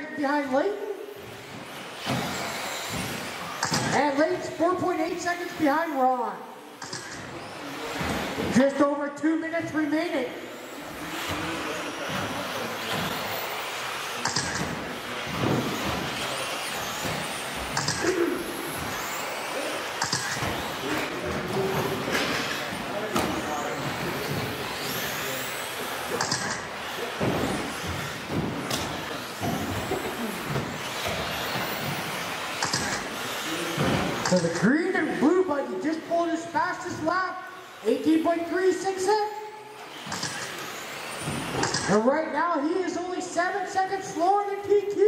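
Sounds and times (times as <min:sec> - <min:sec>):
rc car motors whining: 0:00.1 - 0:45.0
indistinct voices: 0:10.4 - 0:31.0.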